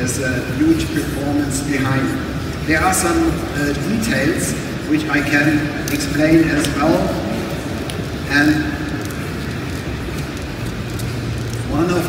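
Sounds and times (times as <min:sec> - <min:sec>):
crowd din in exhibition hall: 0:00.0 - 0:12.0.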